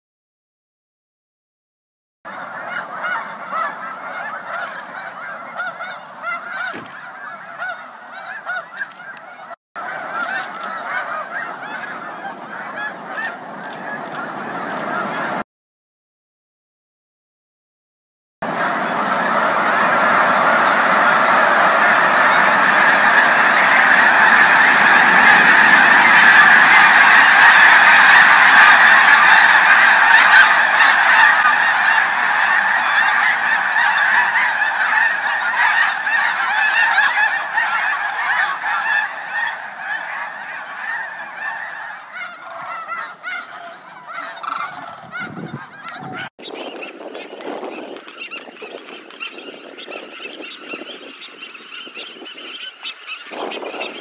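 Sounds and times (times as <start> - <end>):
flock of geese honking: 2.3 - 15.4, 18.4 - 54.0.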